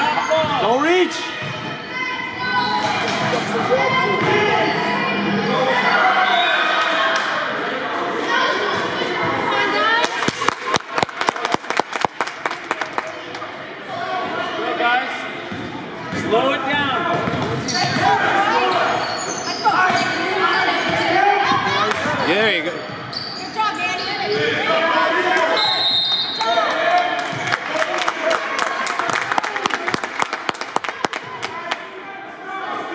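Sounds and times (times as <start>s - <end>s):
sharp handclaps echoing: 10.0s - 13.4s, 27.2s - 31.8s
referee's whistle: 25.5s - 26.5s.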